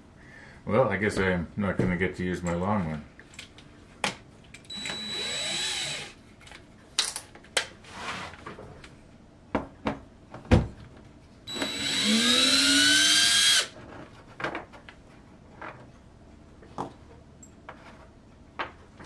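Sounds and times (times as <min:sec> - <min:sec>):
cordless drill whining: 0:04.7 - 0:06.2, 0:11.5 - 0:13.7.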